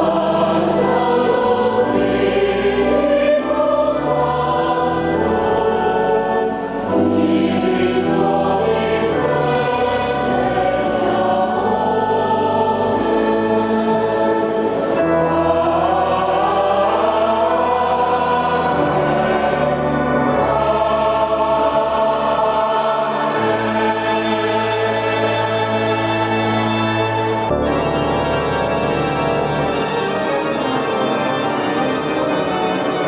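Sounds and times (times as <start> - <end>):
mixed choir singing: 0.0 - 27.5
organ sustained chords: 0.0 - 33.0.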